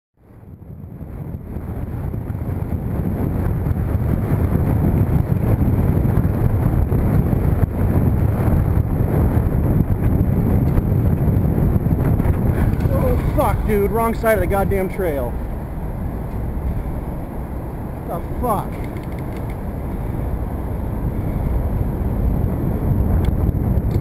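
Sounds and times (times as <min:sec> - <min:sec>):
wind rushing over microphone: 0:00.2 - 0:24.0.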